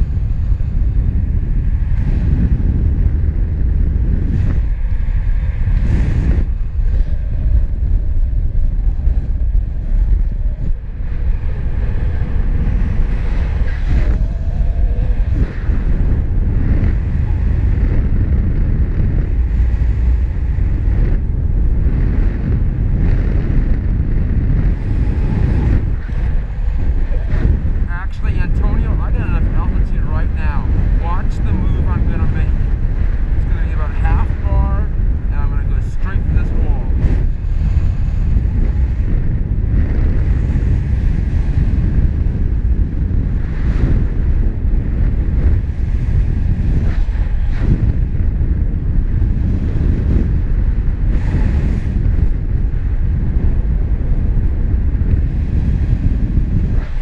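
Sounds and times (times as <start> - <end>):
wind noise rumble: 0.0 - 57.0.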